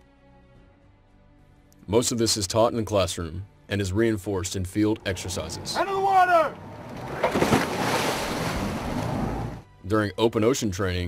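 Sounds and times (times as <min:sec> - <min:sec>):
boat rushing across water: 0:04.8 - 0:09.6.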